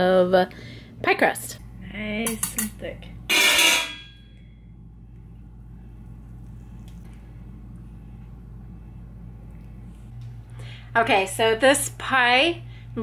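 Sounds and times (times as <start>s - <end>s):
low kitchen hum: 0.0s - 13.0s.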